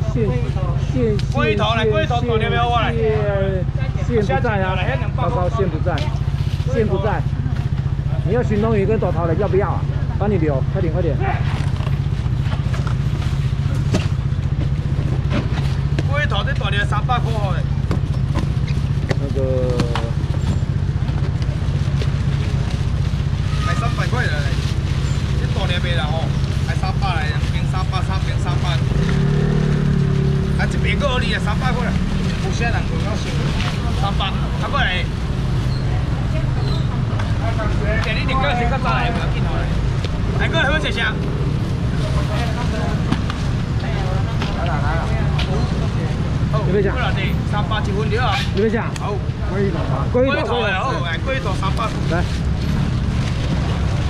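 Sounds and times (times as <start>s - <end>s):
crowd talking: 0.0s - 54.0s
low engine rumble: 0.0s - 54.0s.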